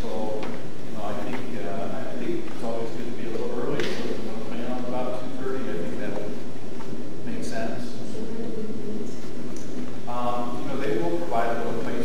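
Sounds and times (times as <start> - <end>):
person speaking in echoing room: 0.0 - 12.0.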